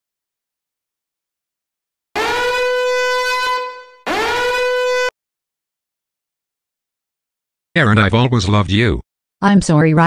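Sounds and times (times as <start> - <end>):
horn blasts: 2.2 - 5.2.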